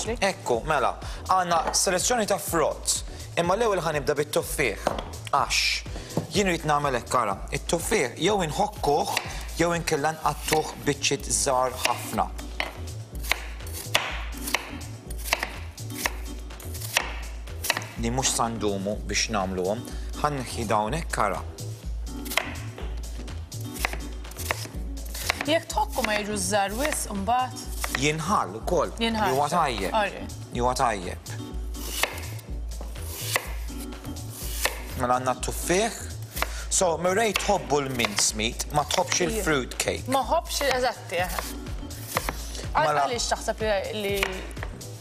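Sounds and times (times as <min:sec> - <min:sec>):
background music with bass line: 0:00.0 - 0:45.0
knife chopping on wooden board: 0:01.5 - 0:01.9, 0:04.8 - 0:05.2, 0:06.0 - 0:06.4, 0:08.8 - 0:09.5, 0:10.1 - 0:10.9, 0:11.7 - 0:18.0, 0:22.2 - 0:23.0, 0:23.7 - 0:28.2, 0:31.8 - 0:35.0, 0:36.3 - 0:39.2, 0:40.5 - 0:42.6, 0:44.2 - 0:44.9.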